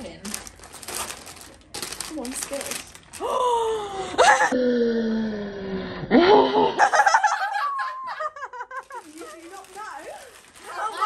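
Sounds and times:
excited laughter: 6.3 - 9.2.

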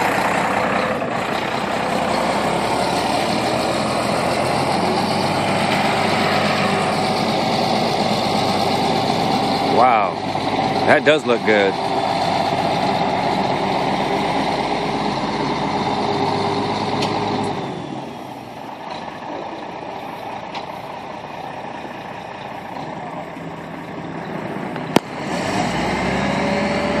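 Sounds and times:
diesel truck engine under load: 0.0 - 27.0.

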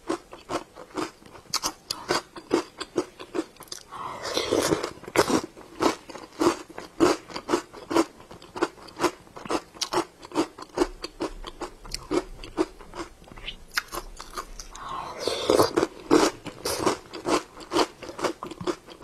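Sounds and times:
crunchy chewing of icy dessert: 0.0 - 19.0.

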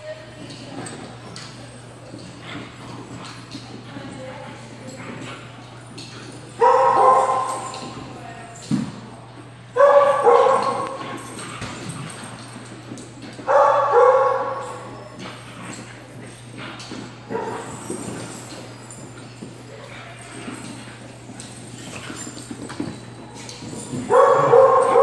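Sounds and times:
dog barking: 6.6 - 7.7, 9.8 - 11.0, 13.5 - 14.7, 24.1 - 25.0.

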